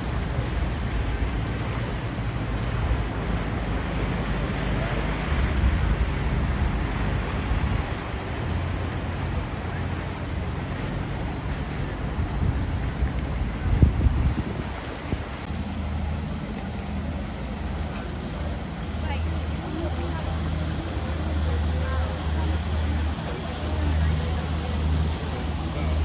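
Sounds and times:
motorboat engines droning: 0.0s - 26.0s
people talking faintly: 14.8s - 26.0s.

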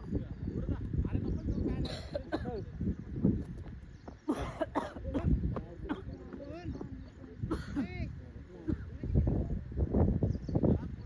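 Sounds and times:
people calling out and chattering: 0.0s - 11.0s.

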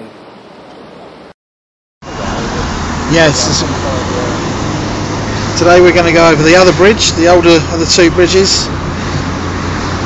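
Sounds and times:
road and engine noise inside car: 2.0s - 10.0s.

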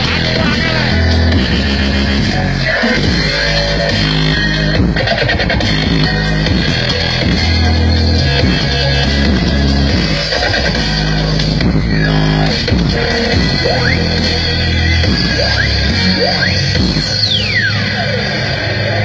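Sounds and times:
loud music with heavy bass: 0.0s - 19.0s.

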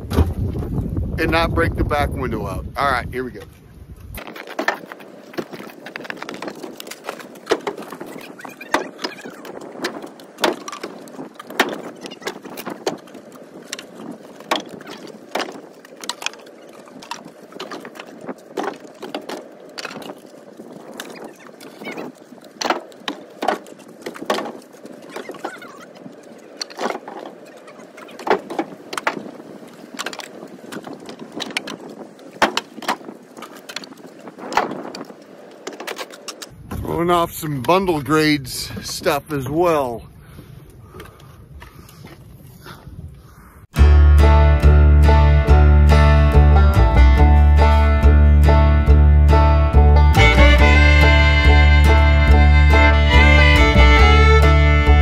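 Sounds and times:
firewood clattering into truck bed: 9.8s - 13.0s.

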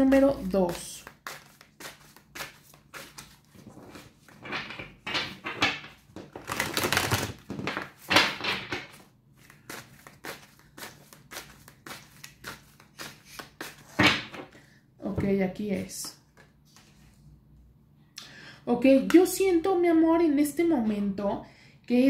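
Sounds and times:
cards sliding swishes: 1.0s - 4.0s, 9.4s - 14.0s.

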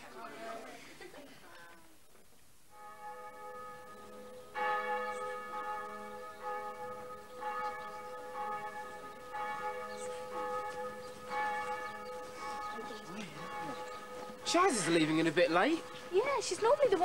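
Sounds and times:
church bell tolling: 2.7s - 17.0s.

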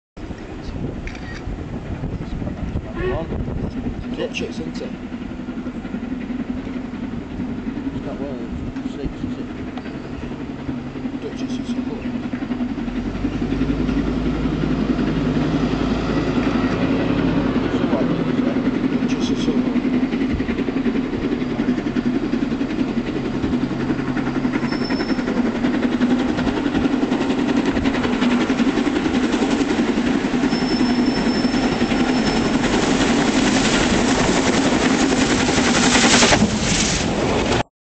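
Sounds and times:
steam locomotive running: 0.2s - 37.7s.

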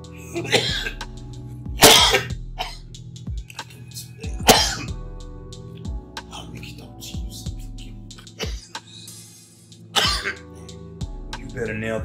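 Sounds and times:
soft background music: 0.0s - 12.0s
man coughing: 0.3s - 1.0s, 1.8s - 2.8s, 4.3s - 5.0s, 8.3s - 8.8s, 9.9s - 10.5s.

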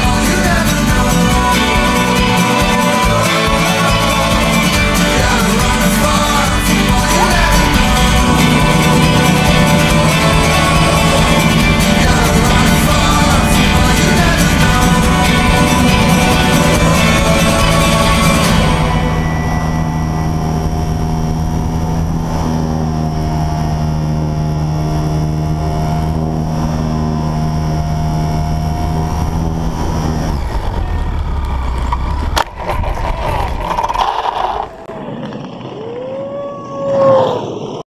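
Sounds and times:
rising and falling whine: 0.0s - 37.8s
model airplane motor running: 0.9s - 34.9s
scraping on road: 28.7s - 36.2s.

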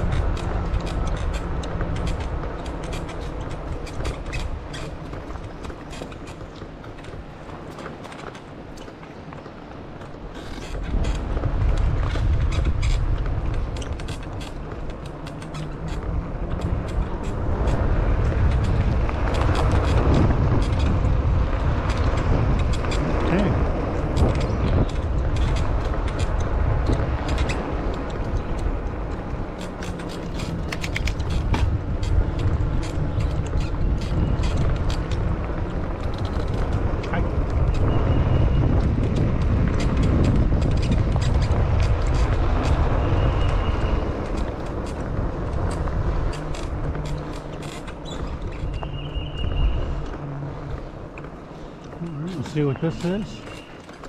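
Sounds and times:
bike clicks and rattles: 0.0s - 54.0s
wind buffeting microphone: 0.0s - 54.0s.

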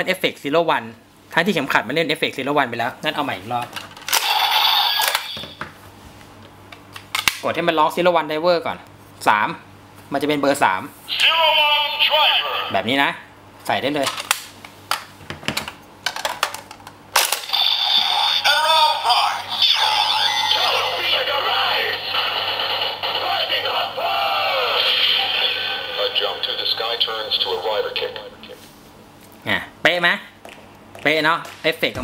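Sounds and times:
electronic toy transformation sounds: 4.1s - 5.5s, 17.2s - 28.2s.

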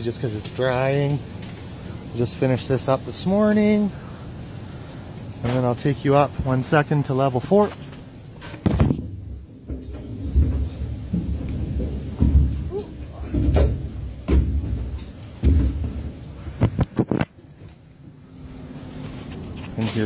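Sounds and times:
microphone handling noise: 7.7s - 9.2s, 15.4s - 17.5s.

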